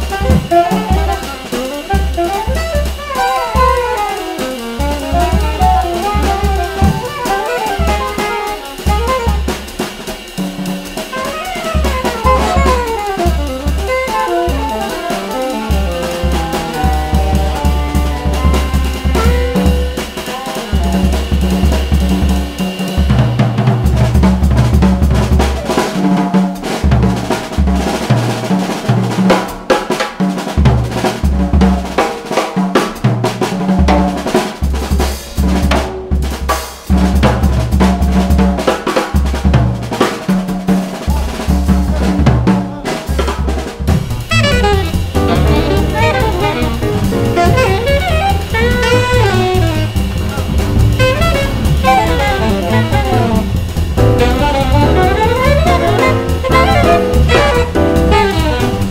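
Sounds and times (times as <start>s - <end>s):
double bass figure: 0.0s - 2.7s, 4.8s - 8.2s, 11.9s - 20.0s, 43.8s - 58.9s
alto saxophone melody: 0.0s - 9.8s, 11.1s - 21.3s, 43.8s - 58.9s
jazz drum solo: 0.0s - 58.9s.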